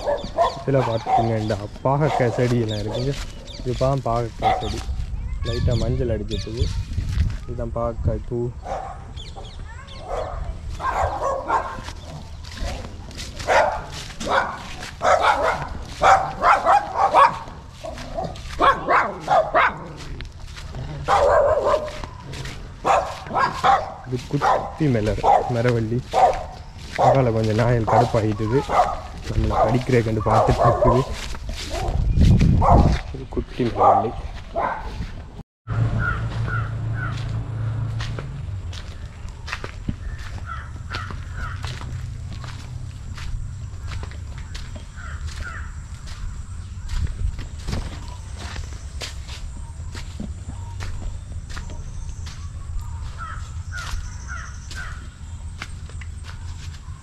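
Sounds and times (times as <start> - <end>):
dog barking: 0.0 - 3.2, 4.4 - 4.9, 8.6 - 9.2, 10.0 - 20.2, 20.9 - 35.1
man talking: 0.5 - 6.8, 7.4 - 8.6, 24.0 - 31.2, 33.0 - 34.3
short bird calls: 49.6 - 55.6.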